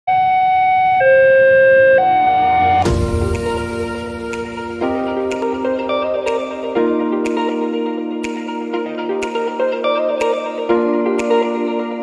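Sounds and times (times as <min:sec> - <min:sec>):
two-tone level crossing alarm: 0:00.1 - 0:03.0.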